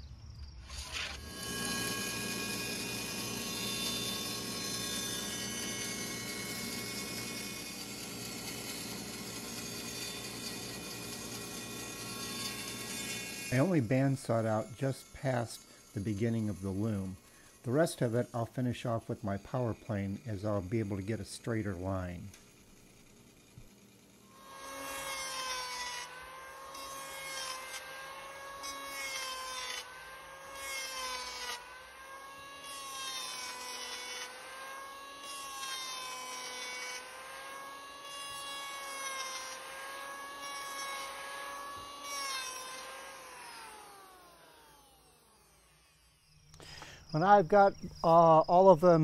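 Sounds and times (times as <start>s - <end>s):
planer cutting wood rasping: 0.6s - 49.0s
electric hand planer running: 0.7s - 46.9s.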